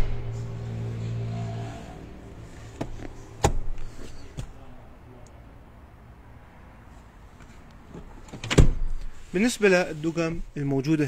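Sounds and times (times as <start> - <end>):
seat hardware clicks and knocks: 2.6 - 4.6.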